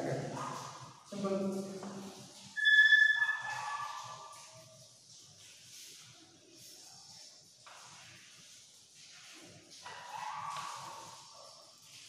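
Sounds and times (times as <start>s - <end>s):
chalk squeaking on blackboard: 2.1s - 4.6s, 9.8s - 11.5s.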